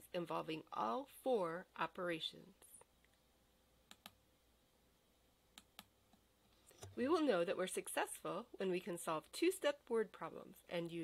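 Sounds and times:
faint sharp clicks: 3.9 - 4.2.

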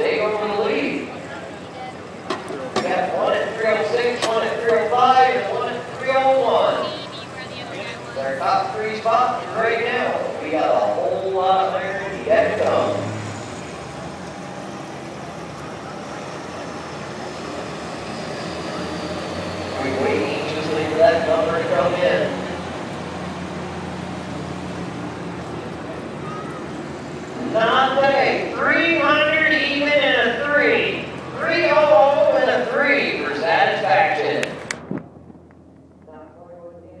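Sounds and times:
man talking over public address: 0.0 - 1.6, 2.5 - 13.1, 19.7 - 22.6, 27.4 - 34.6
diesel tractor engine running: 0.0 - 37.0.

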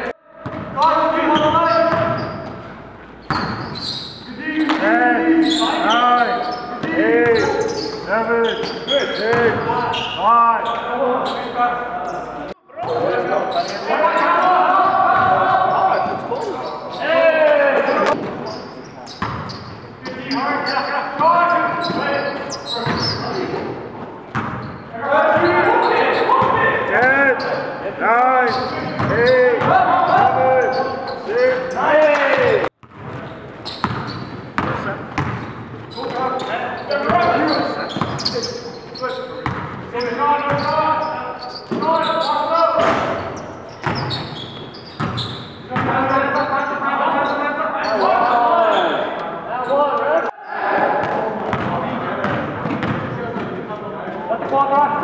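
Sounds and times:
players calling out: 0.0 - 53.1
sneakers squeaking: 0.0 - 53.6.

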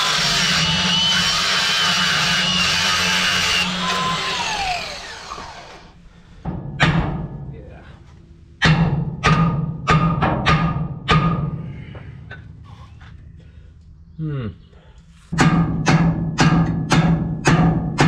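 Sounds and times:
angle grinder whining: 0.0 - 6.0.

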